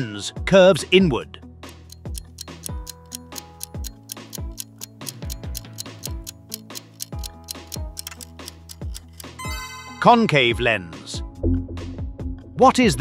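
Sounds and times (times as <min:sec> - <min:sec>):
clock-like ticking: 0:01.6 - 0:09.8
held synth tones: 0:09.4 - 0:10.3.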